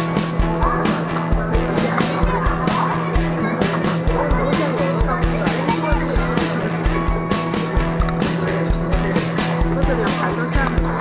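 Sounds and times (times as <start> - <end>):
music with a steady beat: 0.0 - 11.0.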